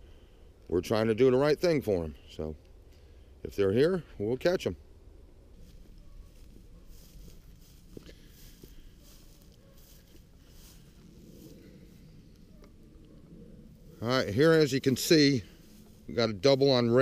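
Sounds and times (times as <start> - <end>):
faint low outdoor noise: 0.0 - 17.0.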